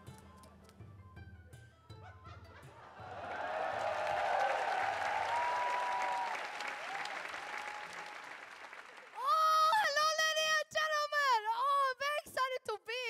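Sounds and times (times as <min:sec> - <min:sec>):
whoops: 0:03.0 - 0:08.4, 0:09.2 - 0:10.2
audience applauding: 0:03.0 - 0:09.5.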